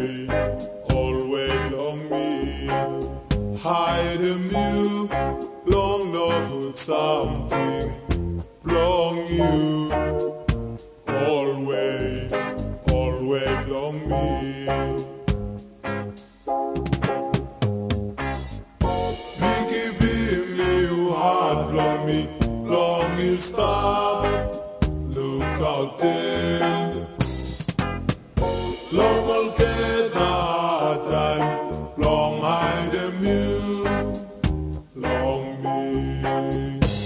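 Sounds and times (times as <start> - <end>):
person singing: 0.0 - 15.4, 18.8 - 27.3, 28.4 - 37.0
backing band with bass: 0.3 - 1.8, 2.8 - 6.6, 7.3 - 11.3, 12.0 - 20.9, 21.6 - 25.8, 26.4 - 30.5, 31.1 - 35.4, 36.2 - 37.0.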